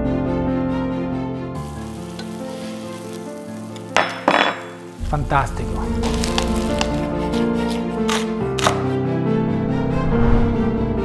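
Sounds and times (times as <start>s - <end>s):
background music: 0.0s - 11.0s
food sizzling in a pan: 1.6s - 8.4s.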